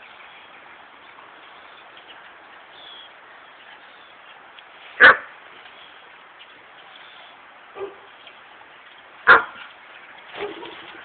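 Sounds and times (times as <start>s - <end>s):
dog barking: 5.0s - 5.3s, 7.8s - 8.1s, 9.3s - 9.6s, 10.4s - 10.9s.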